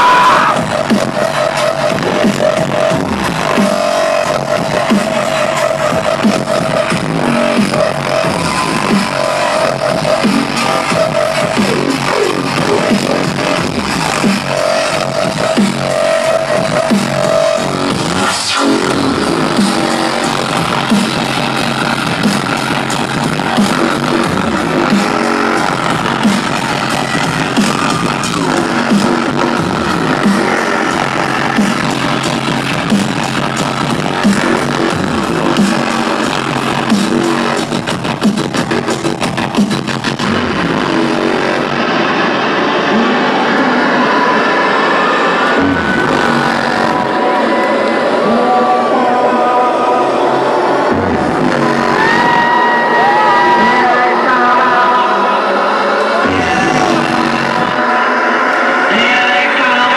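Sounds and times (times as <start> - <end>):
loud electronic bass music: 0.0 - 59.9.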